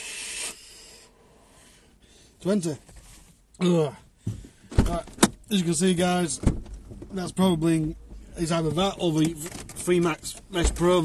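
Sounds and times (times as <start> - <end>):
breathy rush of vapor exhale: 0.0 - 2.4.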